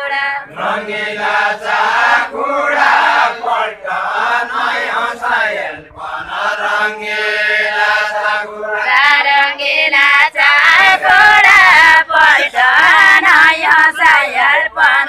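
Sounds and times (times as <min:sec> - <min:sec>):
group singing in unison: 0:00.0 - 0:15.0.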